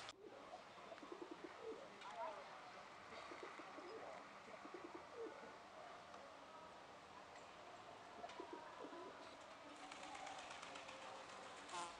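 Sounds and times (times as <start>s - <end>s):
faint outdoor ambience: 0.0s - 11.9s.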